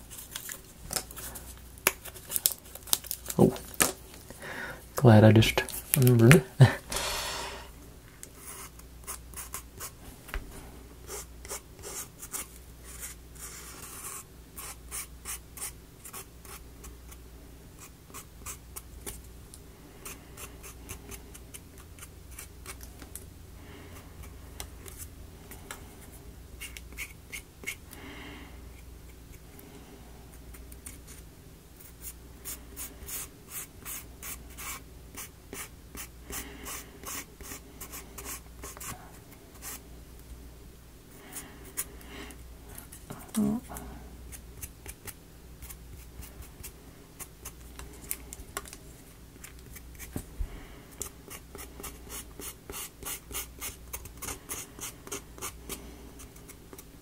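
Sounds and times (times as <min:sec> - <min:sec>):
marker scratching on wood: 0:51.3 - 0:55.6.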